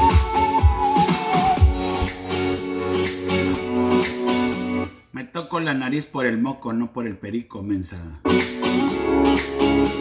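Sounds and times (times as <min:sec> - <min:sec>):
guitar music with sustained chords: 0:01.7 - 0:05.0, 0:08.3 - 0:10.0.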